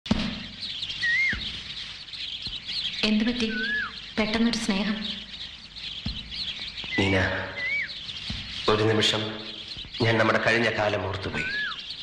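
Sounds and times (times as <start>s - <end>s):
birds chirping: 0.0s - 12.0s
whistled call rising and falling: 0.6s - 1.5s, 3.4s - 4.0s, 6.8s - 8.1s, 11.3s - 12.0s.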